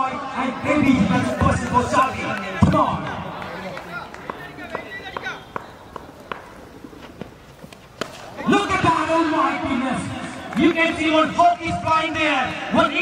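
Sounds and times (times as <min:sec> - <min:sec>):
man talking: 0:00.0 - 0:05.5, 0:08.4 - 0:13.0
faint distant voices: 0:00.0 - 0:13.0
bat striking ball: 0:04.2 - 0:08.9.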